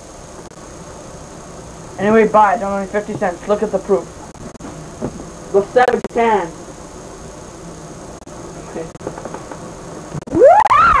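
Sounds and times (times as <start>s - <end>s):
person whooping: 10.3s - 11.0s.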